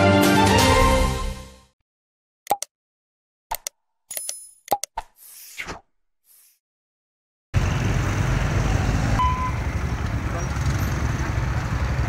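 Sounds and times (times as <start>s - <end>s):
motorcycle engines rumbling: 7.6s - 12.0s
road traffic: 7.6s - 12.0s.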